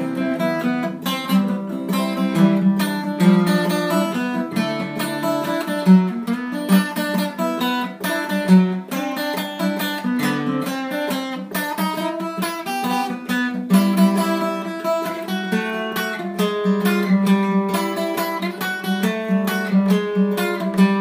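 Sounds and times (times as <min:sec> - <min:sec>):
acoustic guitar picking and strumming: 0:00.0 - 0:21.0.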